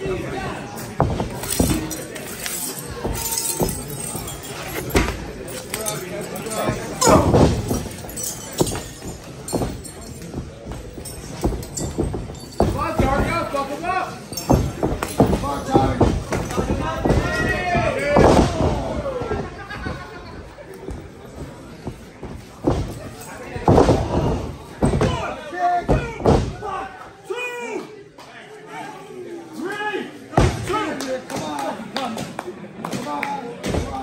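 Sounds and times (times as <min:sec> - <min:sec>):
boots thudding on wrestling ring: 0:06.7 - 0:13.6, 0:14.4 - 0:19.4, 0:20.9 - 0:26.7
people shouting: 0:16.8 - 0:19.4.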